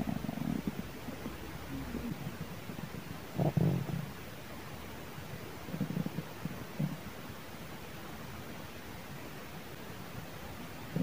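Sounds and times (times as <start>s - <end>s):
stomach growling: 0.0s - 4.2s, 5.7s - 7.0s.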